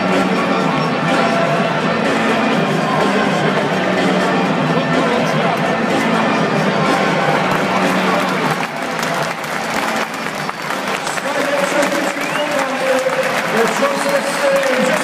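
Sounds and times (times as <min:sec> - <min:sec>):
crowd clapping: 0:07.3 - 0:15.0.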